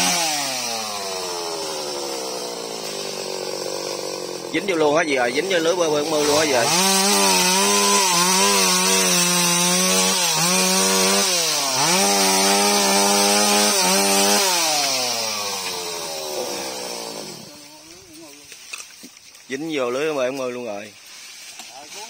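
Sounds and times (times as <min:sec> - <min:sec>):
chainsaw running at high revs: 0:00.0 - 0:17.8.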